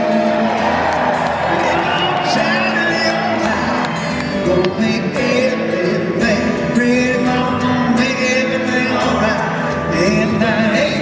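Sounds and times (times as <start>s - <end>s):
strummed acoustic guitars: 0.0s - 11.0s.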